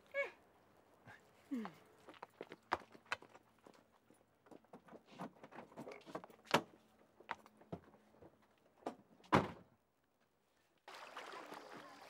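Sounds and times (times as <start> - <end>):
footsteps on pavement: 1.6 - 4.7.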